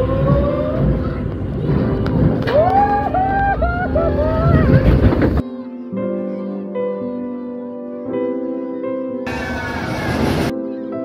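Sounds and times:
riders screaming: 2.4s - 5.2s
low rushing noise: 9.3s - 10.5s.

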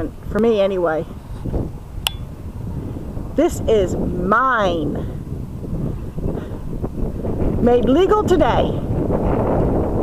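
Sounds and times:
wind rumbling on microphone: 0.0s - 10.0s
short metallic click: 2.1s - 2.3s.

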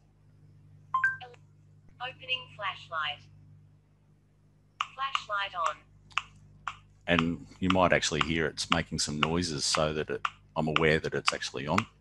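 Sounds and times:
low steady hum: 0.0s - 12.0s
phone beeps rising and falling: 1.0s - 1.3s.

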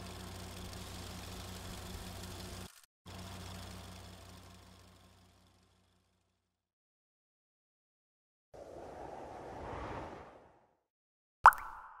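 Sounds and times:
noisy swish: 8.6s - 10.8s.

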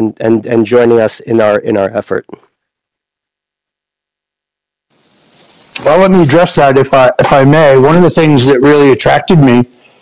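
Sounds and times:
man speaking: 0.0s - 2.5s, 5.8s - 9.8s
faint hiss: 4.9s - 7.3s
high-pitched electronic whine: 5.2s - 10.0s.

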